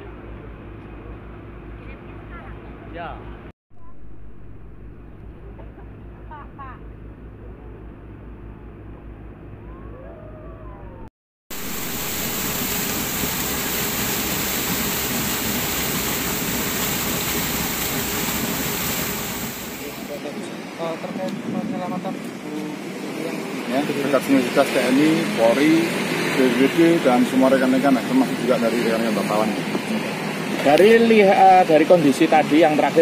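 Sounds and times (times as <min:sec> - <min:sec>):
water gushing from hose: 0:11.5 - 0:20.2.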